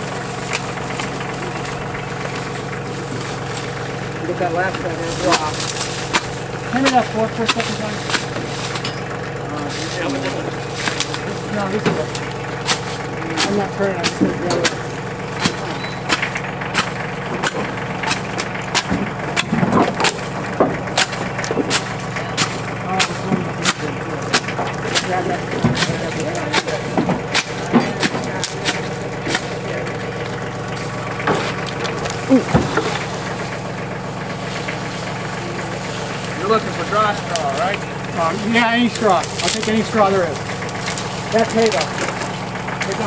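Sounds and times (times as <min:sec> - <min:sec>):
dry stalks cracking: 0:00.0 - 0:43.0
truck engine idling: 0:00.0 - 0:43.0
faint voices: 0:01.0 - 0:15.8, 0:21.7 - 0:33.6
shovel knocking in metal truck bed: 0:11.8 - 0:29.7.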